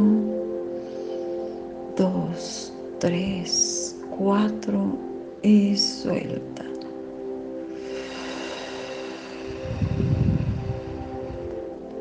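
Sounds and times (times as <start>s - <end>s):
soft background music: 0.0s - 12.0s
breath blown onto microphone: 7.8s - 11.8s.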